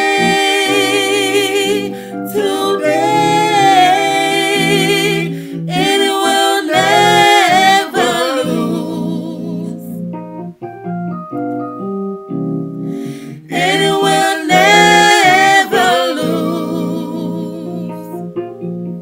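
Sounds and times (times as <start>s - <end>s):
man and woman singing gospel duet: 0.0s - 10.0s, 13.3s - 18.2s
keyboard chords: 0.0s - 19.0s.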